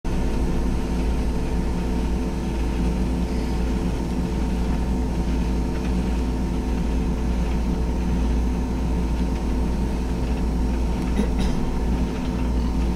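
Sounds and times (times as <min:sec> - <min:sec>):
engine drone: 0:00.1 - 0:12.9.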